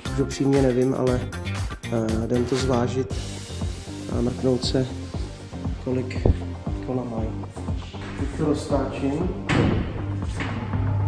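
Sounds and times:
background music: 0.0 - 11.0
thump: 9.5 - 10.7.

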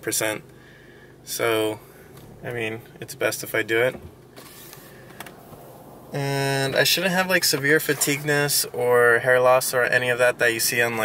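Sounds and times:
faint steady hiss in a car: 0.0 - 11.0.

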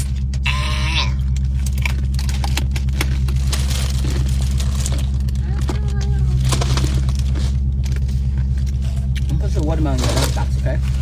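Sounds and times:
car interior hum: 0.0 - 11.0
crinkling of cups and containers: 1.3 - 8.8.

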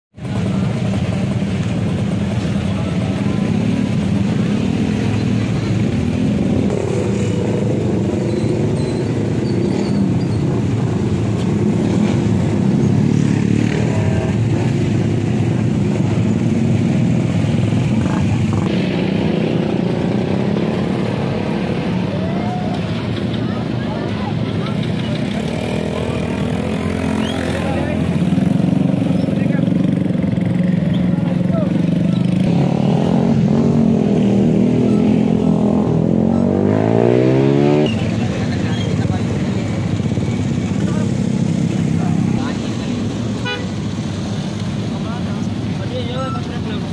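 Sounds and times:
crowd talking: 0.2 - 10.0, 20.0 - 46.9
motorcycle engines running: 0.2 - 46.9.

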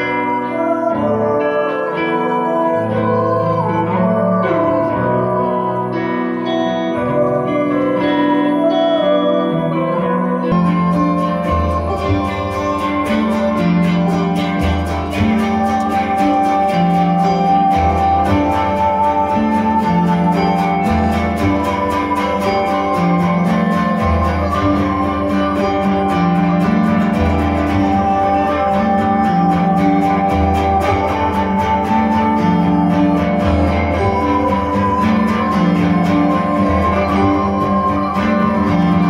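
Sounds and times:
keyboard held tones: 0.0 - 39.0
quickly picked guitar notes: 0.0 - 39.0.

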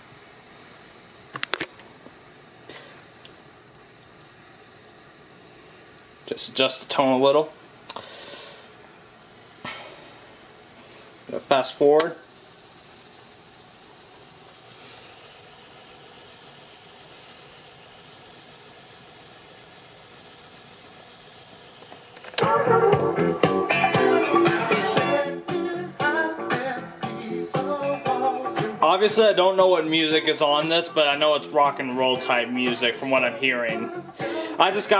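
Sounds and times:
cassette mechanism whirring: 11.1 - 34.9
rock and roll music from speaker: 22.4 - 29.4, 31.4 - 34.9.

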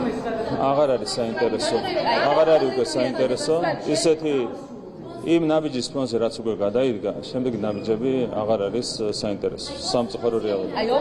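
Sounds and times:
man speaking: 5.2 - 10.7.

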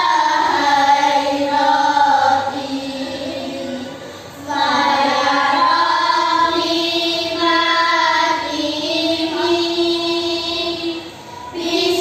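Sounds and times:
girls singing in unison: 0.0 - 12.0.

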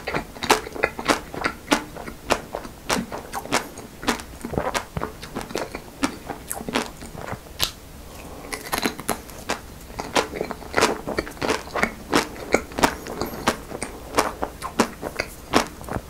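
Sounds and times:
chocolate coating cracking: 0.0 - 7.8, 8.5 - 16.0
biting and chewing ice cream: 0.0 - 16.0.

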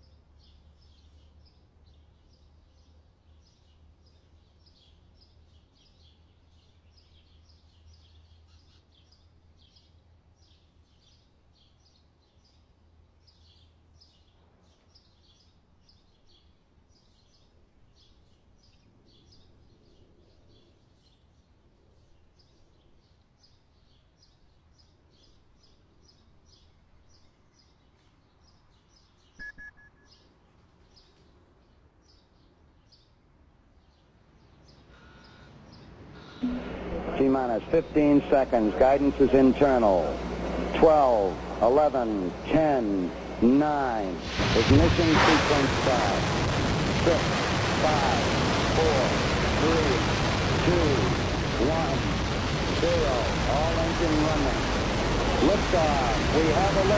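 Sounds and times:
faint bird chirping: 0.0 - 44.3
short high beeps: 29.4 - 30.2
countdown voice: 36.4 - 46.2, 47.8 - 48.2, 50.6 - 52.0
rocket engines roaring: 36.4 - 56.9.

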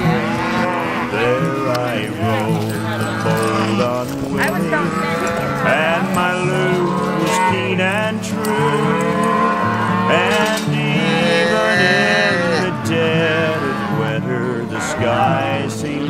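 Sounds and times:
calves bawling: 0.0 - 16.0
country music instrumental: 0.0 - 16.0.

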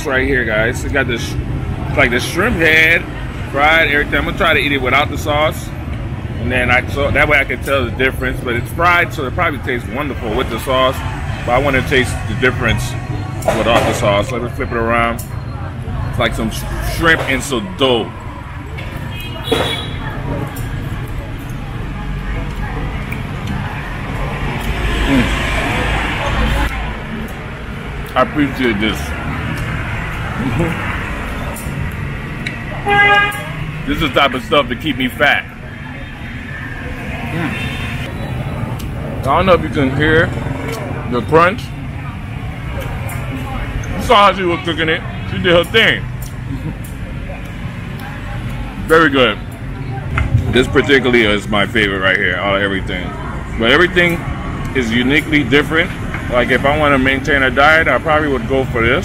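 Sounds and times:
road traffic rumble: 0.0 - 59.0
vehicle passing close by: 21.8 - 32.8
man laughing: 46.5 - 46.9.

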